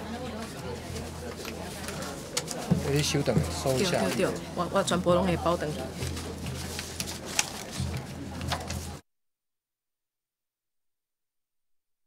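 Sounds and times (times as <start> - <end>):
indistinct chatter: 0.0 - 9.0.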